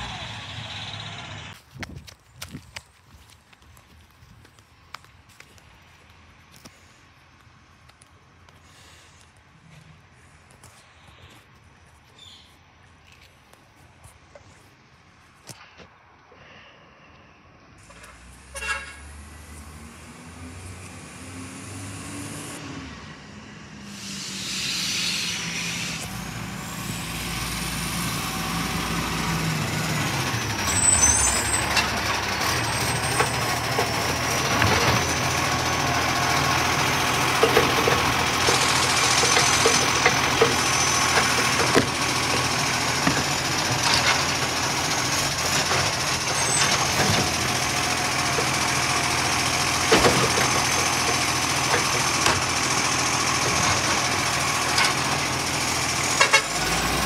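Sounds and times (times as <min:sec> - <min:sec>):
garbage truck diesel engine: 0:00.0 - 0:01.6, 0:17.8 - 0:57.0
air hiss: 0:23.8 - 0:26.1
clanks and knocks: 0:37.3 - 0:44.4, 0:45.4 - 0:47.5, 0:49.9 - 0:52.5.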